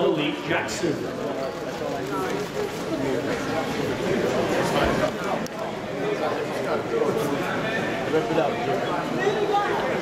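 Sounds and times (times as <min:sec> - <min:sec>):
murmur of voices: 0:00.0 - 0:10.0.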